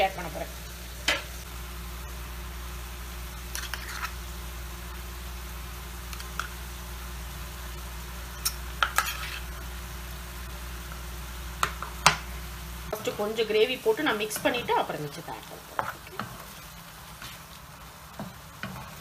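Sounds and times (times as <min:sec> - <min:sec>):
prawns sizzling in a frying pan: 0:00.0 - 0:19.0.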